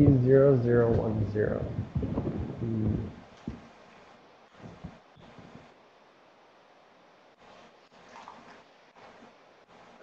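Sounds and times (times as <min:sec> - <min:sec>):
man humming: 0:00.0 - 0:03.2.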